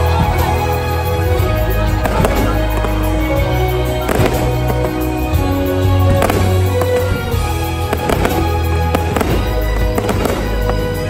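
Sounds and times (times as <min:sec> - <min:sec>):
fireworks bangs: 0:00.0 - 0:11.0
loud show music with bass: 0:00.0 - 0:11.0.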